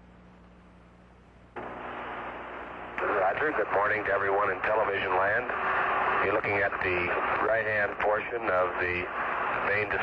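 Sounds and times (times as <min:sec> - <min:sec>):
low hum: 0:00.0 - 0:10.0
radio static hiss: 0:01.4 - 0:10.0.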